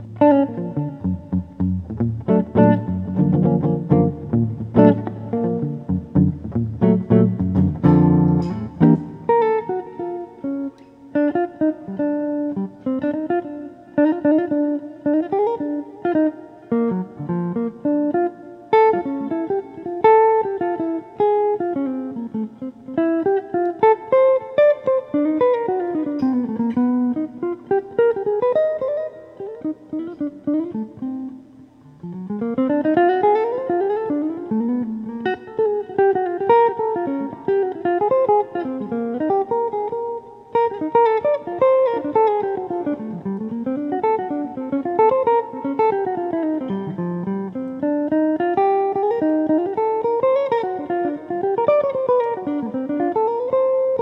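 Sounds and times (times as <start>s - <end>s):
solo jazz guitar: 0.0s - 54.0s.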